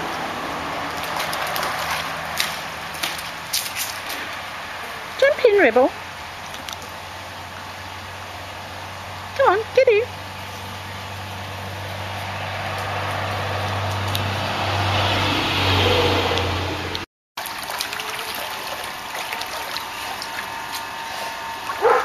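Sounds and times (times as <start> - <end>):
water slapping and splashes: 0.0 - 4.4, 17.4 - 22.0
passing motor vehicle hum: 0.0 - 22.0.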